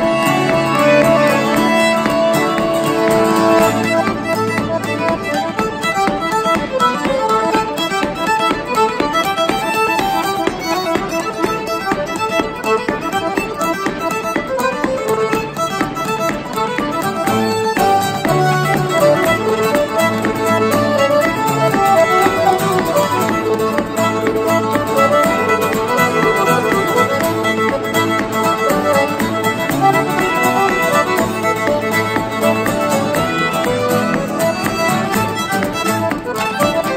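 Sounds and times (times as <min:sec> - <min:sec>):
acoustic guitar: 0:00.0 - 0:11.3, 0:13.7 - 0:36.9
fiddle melody: 0:00.0 - 0:36.9
piano accordion: 0:00.0 - 0:36.9.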